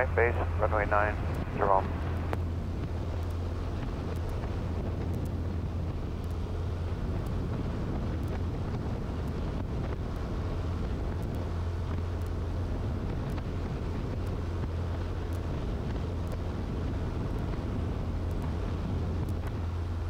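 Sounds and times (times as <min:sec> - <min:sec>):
propeller plane engine drone: 0:00.0 - 0:20.0
wind rush: 0:00.0 - 0:20.0.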